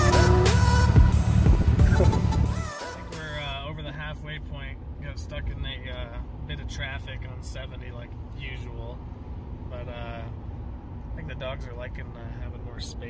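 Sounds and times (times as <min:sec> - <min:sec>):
road and engine rumble: 0:00.0 - 0:13.0
man talking: 0:01.8 - 0:02.4, 0:03.1 - 0:09.0, 0:09.7 - 0:10.4, 0:11.1 - 0:13.0.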